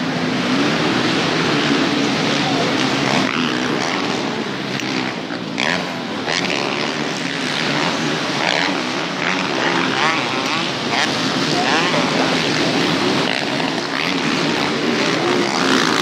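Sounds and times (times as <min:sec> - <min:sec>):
motorcycle engines revving: 0:00.0 - 0:16.0.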